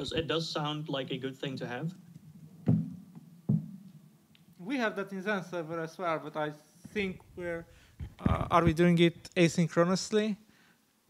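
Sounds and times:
dull knocks with low ring: 2.7s - 3.8s.

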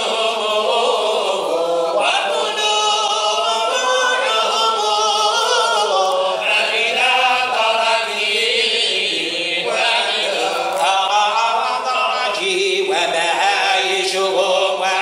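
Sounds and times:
men chanting in unison: 0.0s - 15.0s.

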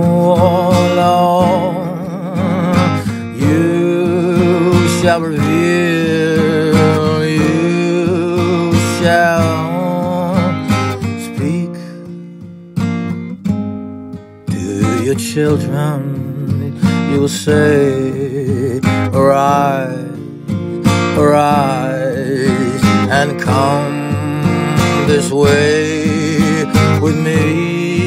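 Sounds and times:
voice singing wordless notes: 0.0s - 12.0s, 14.5s - 20.4s, 21.1s - 28.0s
acoustic guitar strumming: 0.0s - 28.0s.

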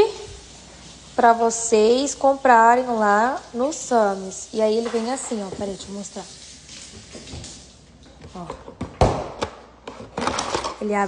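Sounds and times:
carton knocking on countertop: 8.5s - 10.7s.

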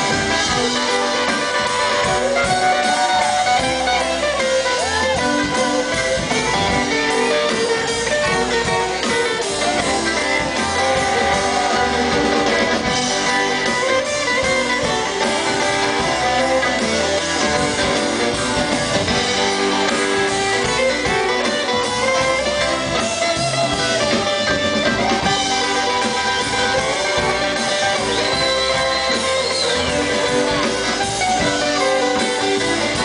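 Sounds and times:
acoustic guitar: 0.0s - 33.0s
bluegrass band playing: 0.0s - 33.0s.

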